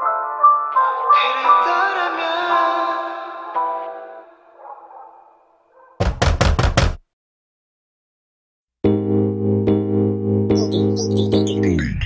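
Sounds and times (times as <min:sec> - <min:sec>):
sharp knocks: 0:06.0 - 0:07.0
song: 0:08.9 - 0:12.0.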